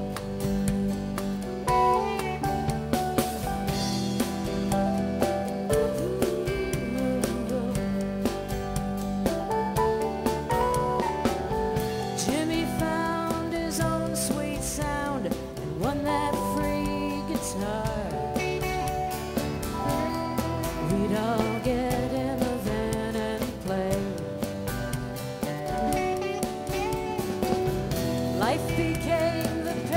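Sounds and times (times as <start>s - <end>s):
live band playing instrumental: 0.0s - 29.9s.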